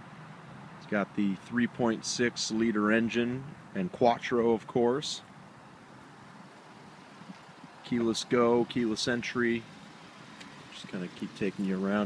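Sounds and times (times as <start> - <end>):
outdoor background noise: 0.0 - 12.0
man talking: 0.8 - 5.3, 7.8 - 9.7, 10.7 - 12.0.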